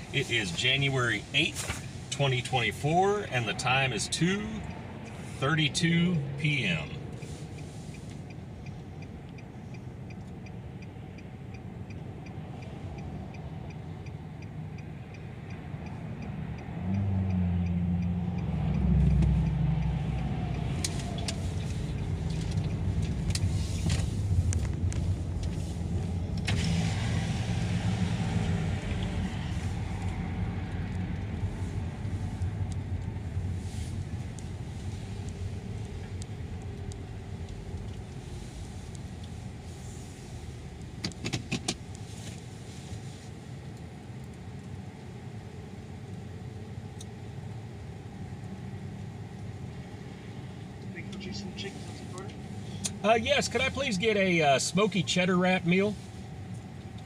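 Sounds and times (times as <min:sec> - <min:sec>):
car engine and road rumble: 0:00.0 - 0:57.0.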